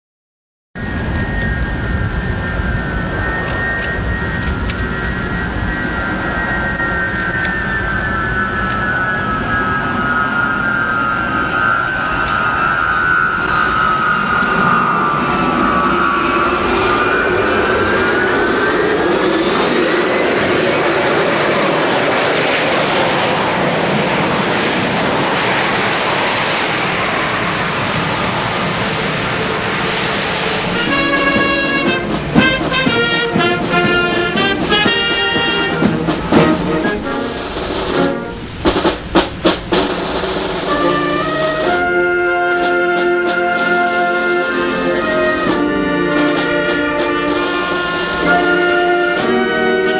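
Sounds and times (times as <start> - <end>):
jet engine whine: 0.8 - 49.9
steady rush of aircraft rolling: 0.8 - 49.9
brass band music: 30.6 - 49.9.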